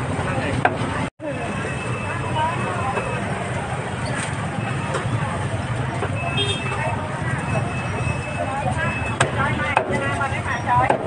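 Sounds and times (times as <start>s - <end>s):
low rumble of traffic: 0.0s - 11.0s
people talking: 0.0s - 11.0s.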